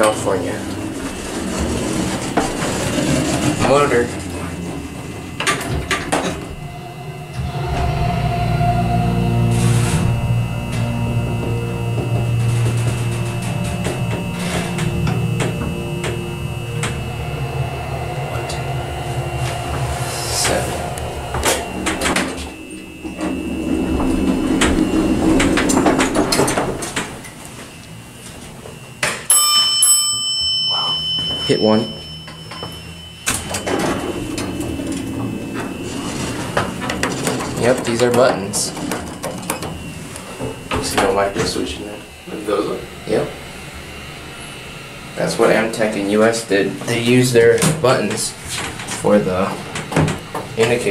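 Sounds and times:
elevator arrival bell: 0.0 - 27.3, 28.8 - 50.9
elevator pump motor humming: 0.0 - 50.9.

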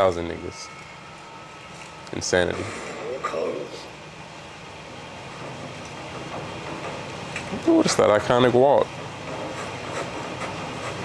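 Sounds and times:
low rumbling soundtrack ambience: 0.0 - 8.2.

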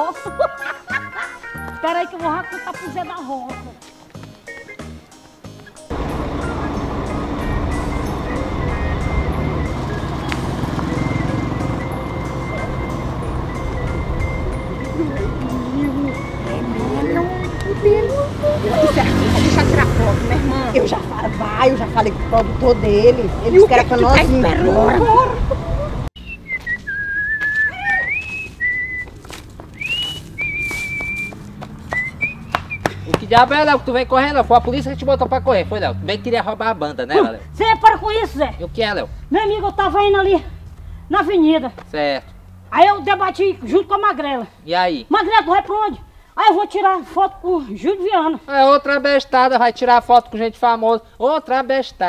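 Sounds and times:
melody over heavy bass: 5.9 - 25.4
man whistling a tune: 6.4 - 18.2, 26.2 - 29.1, 29.8 - 33.0
tool scraping dirt ground: 27.6 - 32.0.

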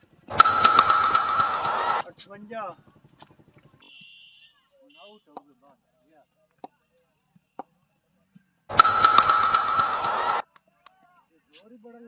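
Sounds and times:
sharp knocks: 0.3 - 2.1, 8.7 - 10.4.

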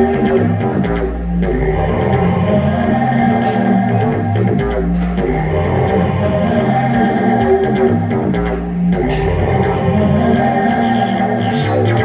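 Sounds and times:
deep synth bass notes: 0.0 - 12.0
layered pitched synth tones: 0.0 - 12.0.

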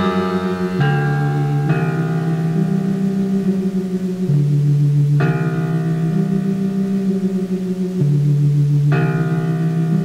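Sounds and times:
bell-like struck note: 0.0 - 2.5
sustained low synthesizer chord: 0.0 - 10.0.

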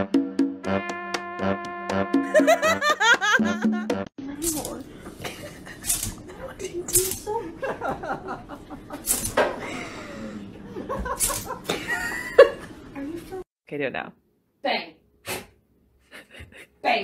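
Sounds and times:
music: 0.0 - 2.8, 3.4 - 4.1
people laughing: 2.3 - 3.9, 5.2 - 12.8.

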